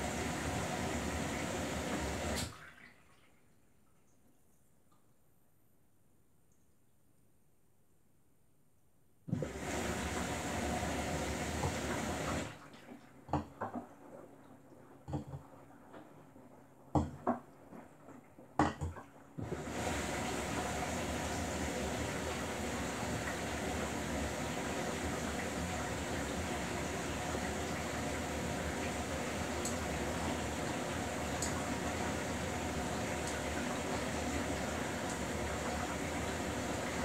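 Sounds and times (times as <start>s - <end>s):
water rushing into washing machine: 0.0s - 4.1s, 9.3s - 37.0s.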